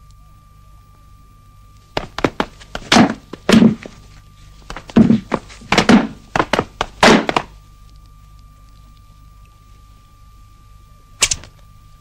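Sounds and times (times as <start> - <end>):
faint steady hum: 0.0 - 12.0
rapid thuds and whacks: 2.0 - 4.0, 4.7 - 7.5.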